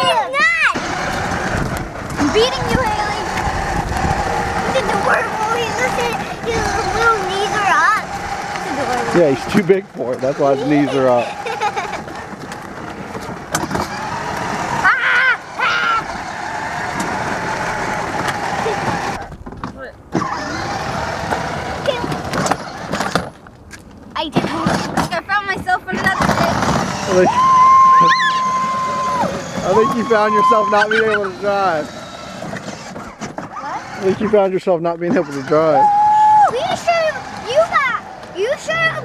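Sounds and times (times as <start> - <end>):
voices: 0.0 - 13.4, 21.4 - 22.4, 24.2 - 39.0
toy car motor and wheels: 0.0 - 23.5, 24.2 - 39.0.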